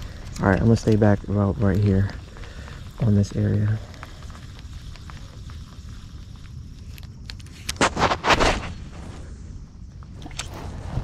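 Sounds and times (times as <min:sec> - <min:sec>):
wind rumble on microphone: 0:08.0 - 0:11.0.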